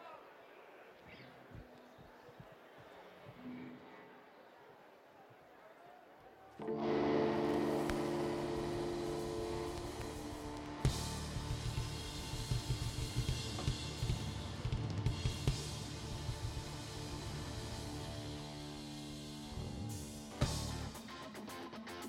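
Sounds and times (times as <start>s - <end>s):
band playing a held chord: 6.6s - 14.7s
drum kit beat: 6.8s - 18.4s.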